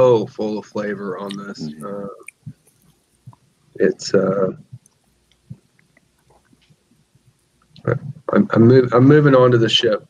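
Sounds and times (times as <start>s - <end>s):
man speaking: 0.0s - 2.5s, 3.8s - 4.8s, 7.8s - 10.0s
faint steady hum: 0.0s - 10.0s
faint small clicks: 4.8s - 7.9s.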